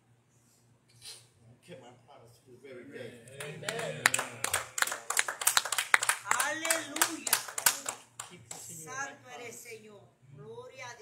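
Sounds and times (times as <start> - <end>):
congregation clapping: 3.4 - 8.7.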